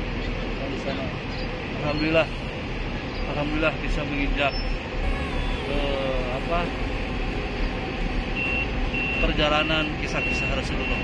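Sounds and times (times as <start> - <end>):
traffic rumble: 0.0 - 11.0
vehicle reversing alarm beeps: 4.4 - 5.6, 8.3 - 11.0.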